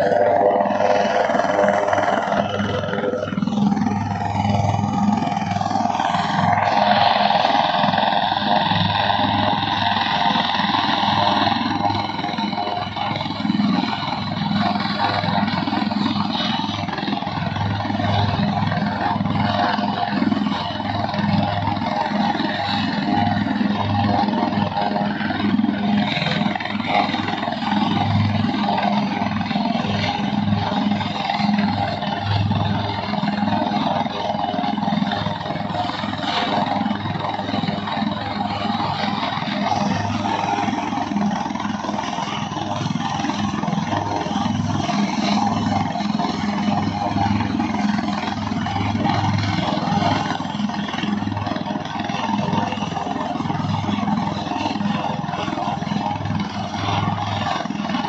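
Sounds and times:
helicopter rotor pulsing: 0:00.0 - 0:58.0
helicopter turbine whine: 0:00.0 - 0:58.0.

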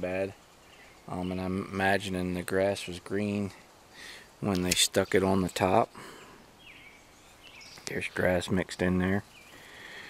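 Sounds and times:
man speaking: 0:00.0 - 0:00.4, 0:01.1 - 0:03.6, 0:04.4 - 0:06.2, 0:07.9 - 0:09.3
faint bird chirp: 0:00.0 - 0:10.0.

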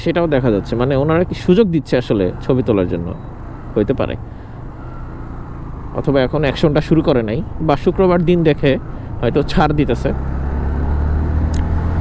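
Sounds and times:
man speaking: 0:00.0 - 0:03.2, 0:06.0 - 0:10.2
motorcycle engine: 0:00.3 - 0:12.0.

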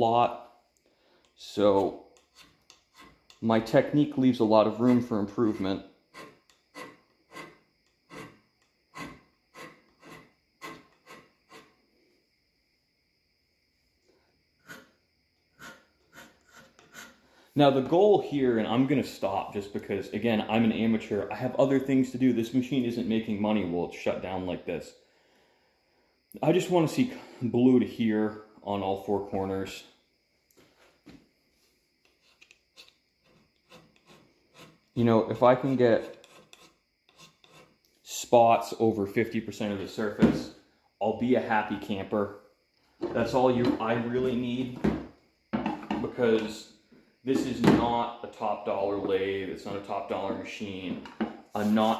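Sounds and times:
hand scraper scraping cast iron: 0:01.6 - 0:11.8, 0:14.6 - 0:14.9, 0:15.6 - 0:17.2, 0:32.0 - 0:37.8.

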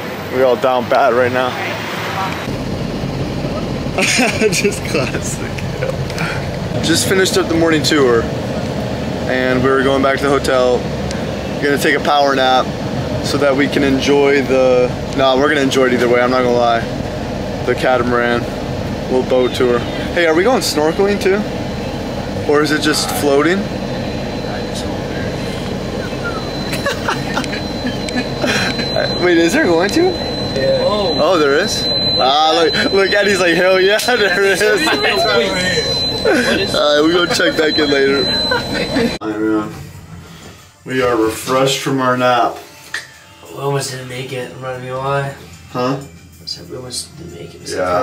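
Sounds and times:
coach engine and road rumble: 0:00.0 - 0:39.2
thin high whine: 0:00.0 - 0:48.0
faint passenger voices: 0:13.2 - 0:40.0
person speaking: 0:32.2 - 0:39.2.

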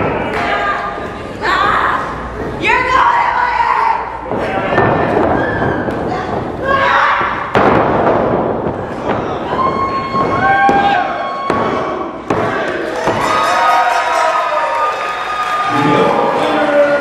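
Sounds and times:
people shouting: 0:02.9 - 0:07.6, 0:08.8 - 0:17.0
wrestlers thudding on ring: 0:04.2 - 0:13.6.

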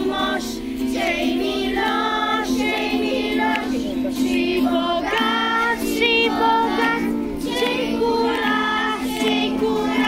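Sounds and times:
acoustic guitar: 0:00.0 - 0:10.0
children singing in unison: 0:00.0 - 0:10.0.

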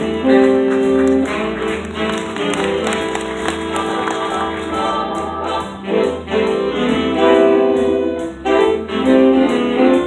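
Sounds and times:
big band playing: 0:00.0 - 0:10.0.

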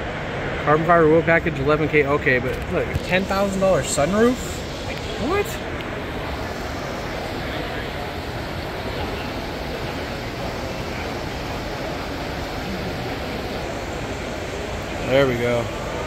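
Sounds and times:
crowd chatter indoors: 0:02.6 - 0:16.0.

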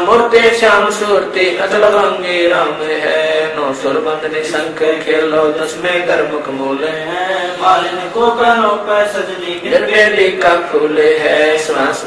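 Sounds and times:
man chanting devotional verses: 0:00.0 - 0:12.0.

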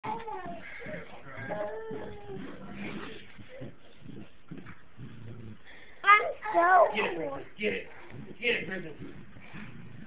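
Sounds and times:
dog whining: 0:00.0 - 0:04.4.

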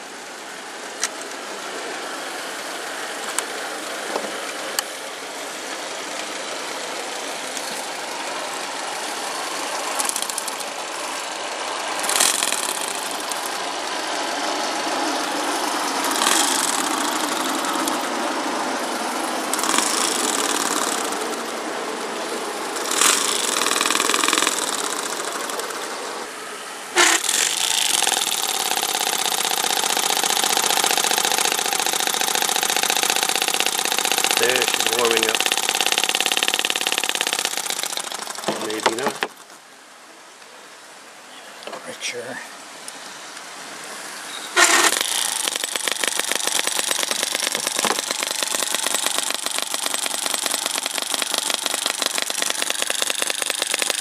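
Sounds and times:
small engine running steadily: 0:00.0 - 0:39.5, 0:44.6 - 0:54.0
electric starter cranking engine: 0:06.2 - 0:26.3, 0:26.9 - 0:39.5, 0:44.6 - 0:54.0
loud engine burst: 0:11.9 - 0:21.7, 0:22.5 - 0:26.1, 0:26.9 - 0:39.2, 0:44.6 - 0:54.0.

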